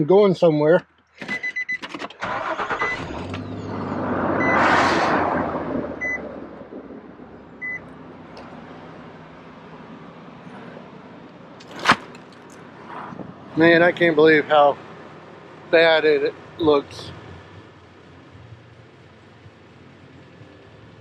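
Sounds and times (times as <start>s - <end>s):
truck engine cranking and idling: 0.0s - 21.0s.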